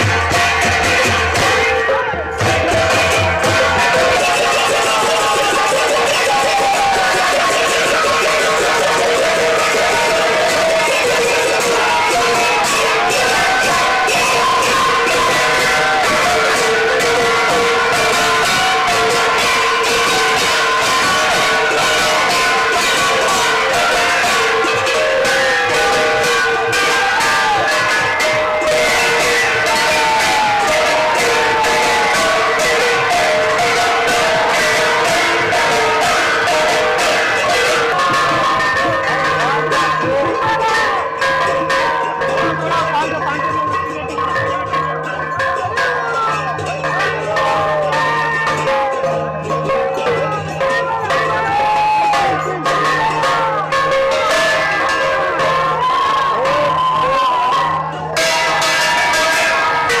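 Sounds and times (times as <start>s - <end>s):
crowd chanting and shouting: 0.0s - 60.0s
hand gongs and cymbals beaten: 0.0s - 60.0s.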